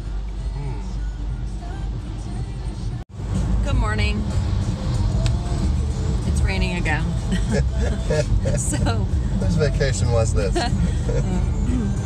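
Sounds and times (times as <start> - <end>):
car cabin road noise: 0.0 - 12.0
music playing: 0.0 - 12.0.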